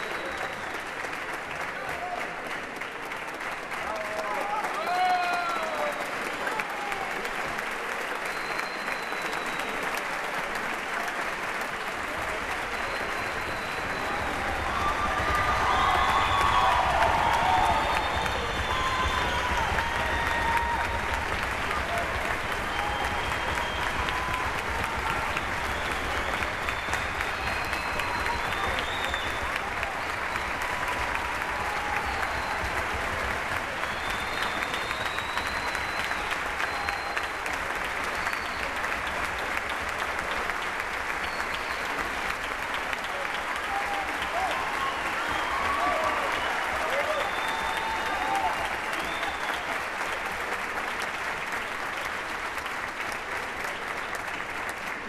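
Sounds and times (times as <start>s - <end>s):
audience applauding: 0.0s - 55.0s.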